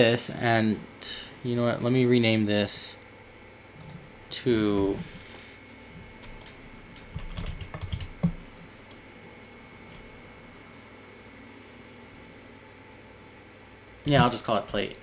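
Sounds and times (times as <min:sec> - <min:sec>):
typing on computer keyboard: 0:06.2 - 0:08.4.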